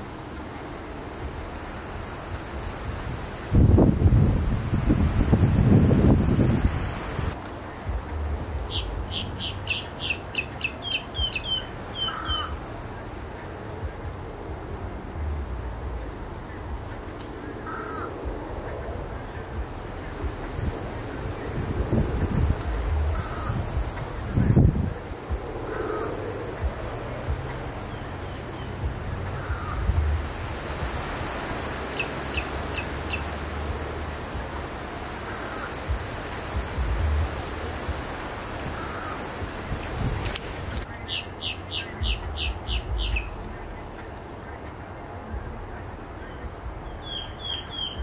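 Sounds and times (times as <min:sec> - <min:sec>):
low rumble: 0:00.0 - 0:09.7, 0:11.2 - 0:31.0, 0:32.5 - 0:38.8, 0:41.9 - 0:47.4
harsh bird calls: 0:08.7 - 0:12.7, 0:40.9 - 0:43.9.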